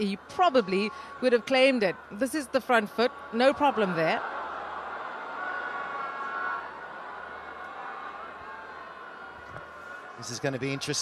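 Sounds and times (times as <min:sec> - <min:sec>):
stadium crowd hum: 0:00.0 - 0:11.0.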